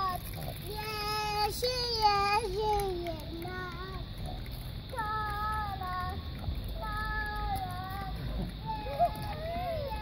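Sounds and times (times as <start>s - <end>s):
child singing: 0.0s - 4.2s, 4.9s - 10.0s.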